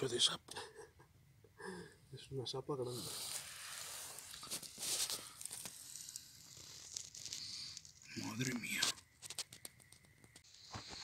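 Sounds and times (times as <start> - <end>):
rustling grass and leaves: 2.9 - 11.0.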